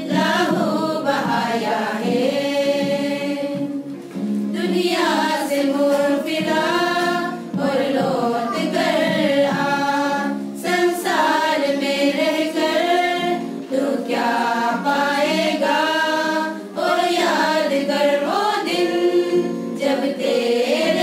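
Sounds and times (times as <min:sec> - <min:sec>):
women's choir singing a hymn: 0:00.0 - 0:21.0.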